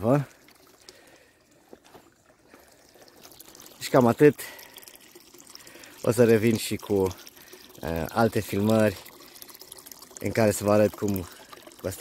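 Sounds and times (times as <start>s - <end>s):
faint trickle of water into pool: 0.0s - 12.0s.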